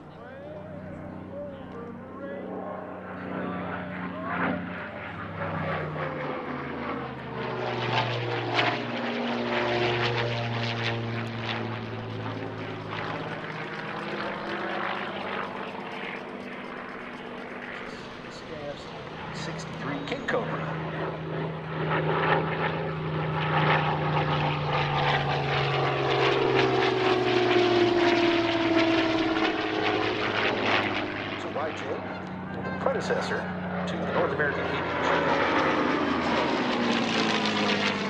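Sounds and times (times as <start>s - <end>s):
propeller plane passing overhead: 0.0s - 38.0s.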